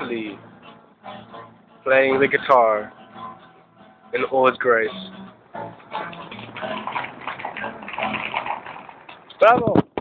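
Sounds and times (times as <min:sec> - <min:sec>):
blues guitar strumming: 0:00.0 - 0:09.4.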